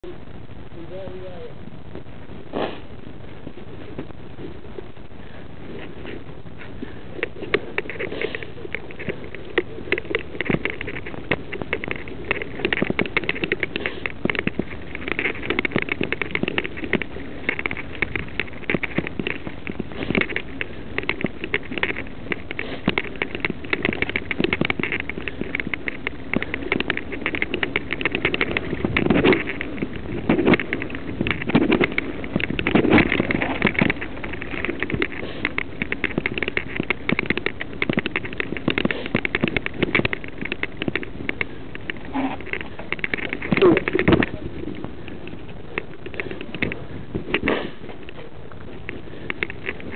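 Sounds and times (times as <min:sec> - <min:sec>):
bike rattling over rough trail: 0:00.0 - 0:49.9.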